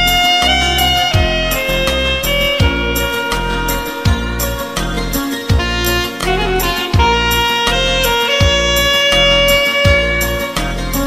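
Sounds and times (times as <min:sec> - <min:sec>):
alto saxophone melody: 0:00.0 - 0:11.0
backing track with bass: 0:00.0 - 0:11.0.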